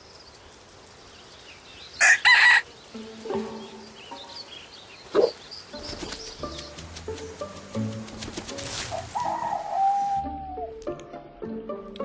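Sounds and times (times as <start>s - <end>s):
rooster crowing: 2.0s - 2.7s.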